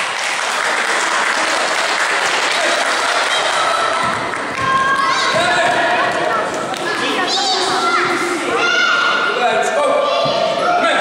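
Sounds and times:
children shouting: 2.5 - 11.0.

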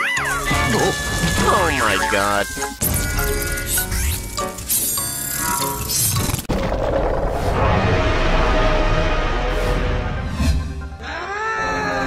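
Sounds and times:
cartoon background music: 0.0 - 6.5, 9.2 - 12.0
low rumble: 6.5 - 10.9
gliding voice-like cries: 11.0 - 12.0.

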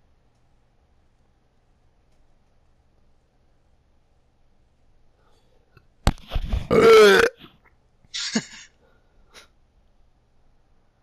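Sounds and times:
person's loud vocal sound: 6.6 - 7.4, 8.2 - 8.7.

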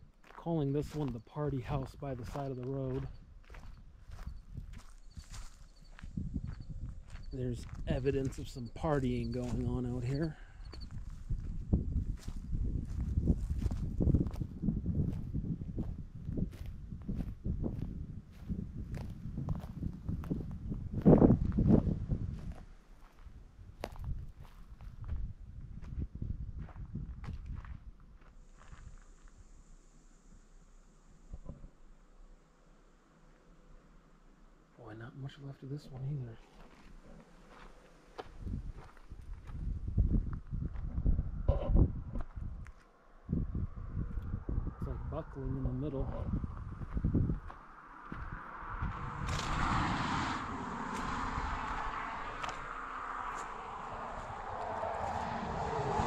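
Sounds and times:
footsteps outdoors: 0.0 - 29.5, 35.2 - 41.2, 42.1 - 43.3, 46.2 - 56.0
footsteps crunching: 0.1 - 6.2, 35.9 - 39.7, 50.8 - 55.4.

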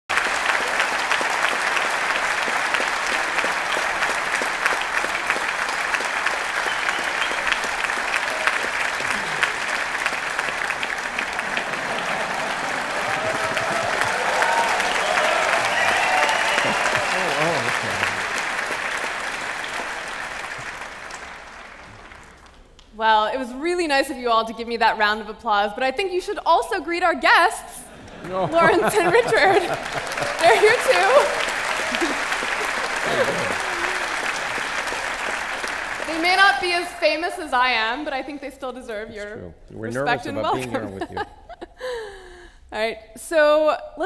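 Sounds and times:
audience applauding: 0.1 - 22.9, 28.0 - 37.2
voices: 15.1 - 18.3, 26.5 - 32.1, 33.0 - 34.0.

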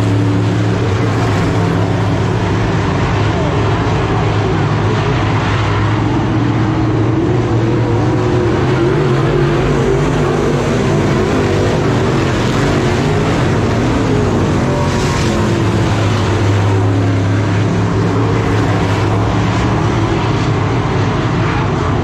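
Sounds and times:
race car engines roaring: 0.0 - 22.0.

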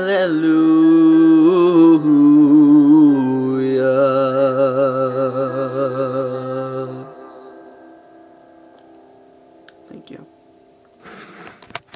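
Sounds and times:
man singing with vibrato: 0.0 - 9.6
steady low note: 1.3 - 11.2
faint ringing tail: 1.6 - 11.9.

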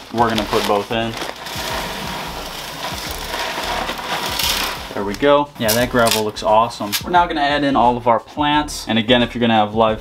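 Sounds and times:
gravel pouring into glass tank: 0.0 - 6.3.

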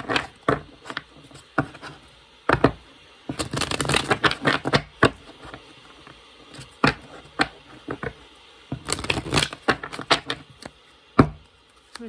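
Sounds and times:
cards being shuffled: 3.3 - 5.6, 8.8 - 10.8, 11.7 - 12.0.

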